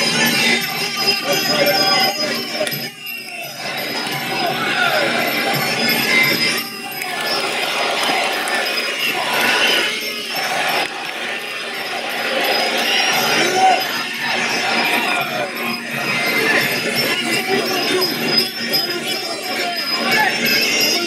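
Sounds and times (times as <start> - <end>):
small cymbals jingling: 0.0 - 21.0.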